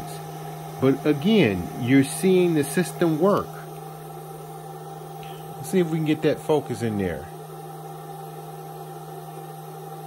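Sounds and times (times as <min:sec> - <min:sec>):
inverter electrical hum: 0:00.0 - 0:10.0.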